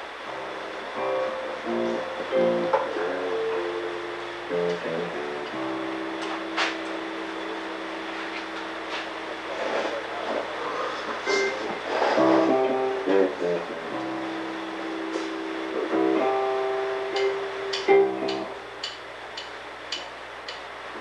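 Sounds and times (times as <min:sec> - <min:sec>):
cymbal strikes: 0:11.2 - 0:12.9
live rock band instrumental: 0:15.0 - 0:18.5.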